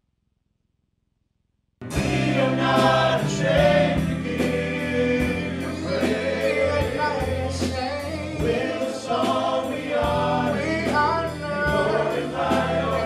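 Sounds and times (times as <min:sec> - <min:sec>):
live band with bass and drums: 0:01.8 - 0:13.0
group singing gospel: 0:01.9 - 0:13.0.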